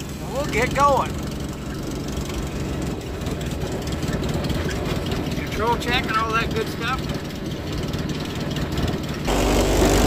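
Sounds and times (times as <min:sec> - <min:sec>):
small aircraft engine idling: 0:00.0 - 0:10.0.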